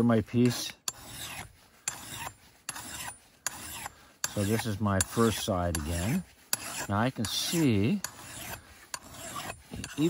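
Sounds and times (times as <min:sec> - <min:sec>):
file rasping on steel edge: 0:00.0 - 0:10.0.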